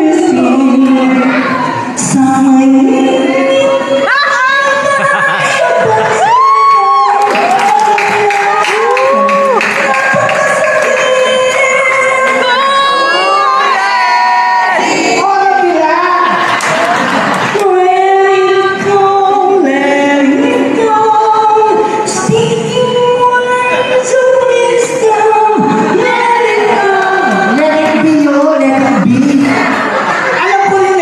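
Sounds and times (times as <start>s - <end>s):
audience cheering and shouting: 0.0s - 19.8s, 23.8s - 31.0s.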